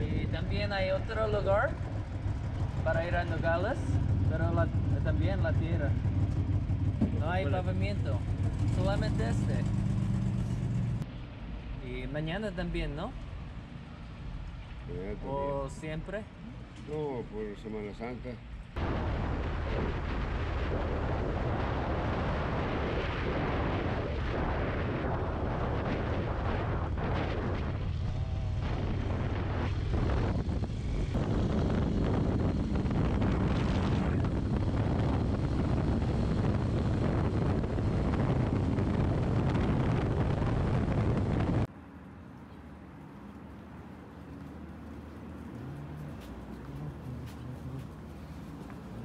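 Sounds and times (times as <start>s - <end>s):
motorcycle engine running: 1.6s - 11.0s
wind rush on microphone: 18.8s - 41.7s.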